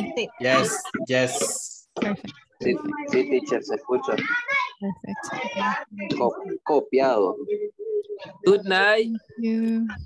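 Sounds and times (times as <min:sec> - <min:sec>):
people talking over video call: 0:00.0 - 0:10.0.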